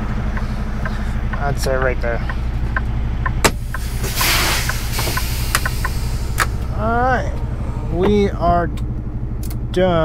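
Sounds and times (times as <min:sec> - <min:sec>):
diesel truck engine idling: 0:00.0 - 0:10.0
air brake hiss: 0:03.7 - 0:06.5.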